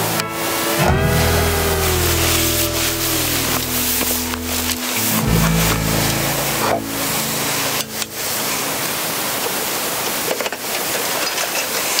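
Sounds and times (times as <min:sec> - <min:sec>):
low music notes: 0:00.0 - 0:10.0
steady rushing hiss: 0:00.0 - 0:12.0.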